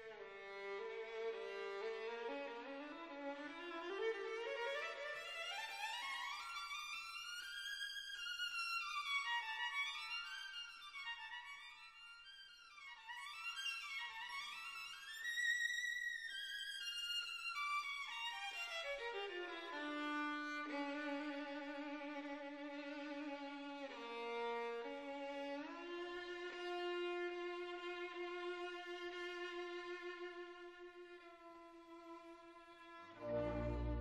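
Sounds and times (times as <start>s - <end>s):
violin playing slow melody: 0.0s - 34.0s.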